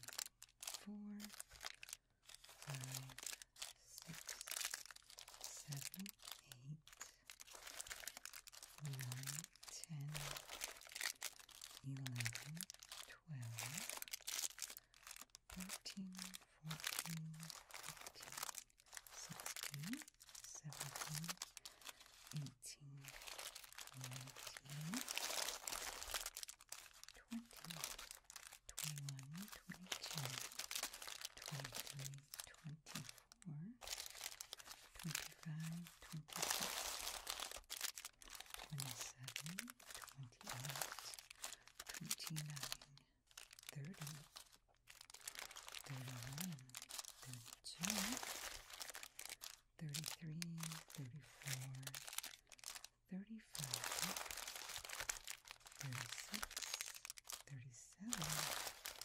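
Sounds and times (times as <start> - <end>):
plastic candy wrappers crinkling: 0.0 - 59.0.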